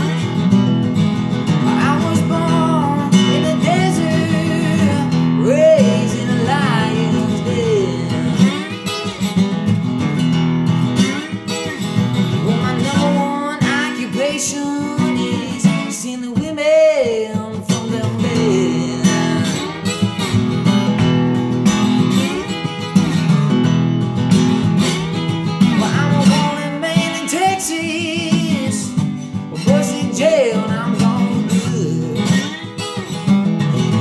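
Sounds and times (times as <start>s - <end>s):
acoustic guitar strummed: 0.0s - 34.0s
man singing: 1.5s - 8.9s, 12.3s - 20.0s, 25.6s - 32.8s.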